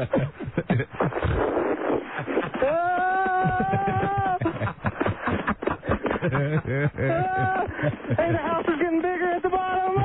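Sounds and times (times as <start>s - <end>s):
people laughing: 2.2s - 8.8s
man wailing: 2.6s - 4.6s, 6.9s - 8.4s.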